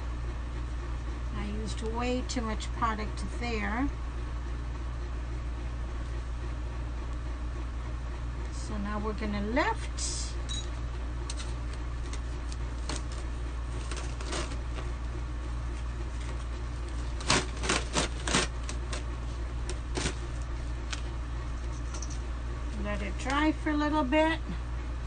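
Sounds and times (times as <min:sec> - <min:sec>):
steady low hum: 0:00.0 - 0:25.0
mesh sheet peeling clicks and crinkles: 0:11.2 - 0:15.1, 0:15.7 - 0:22.3.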